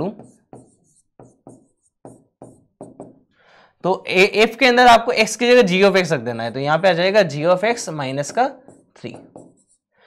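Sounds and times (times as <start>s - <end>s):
pen tapping on writing board: 0.0s - 3.2s, 8.6s - 9.8s
soft breath: 3.3s - 3.8s.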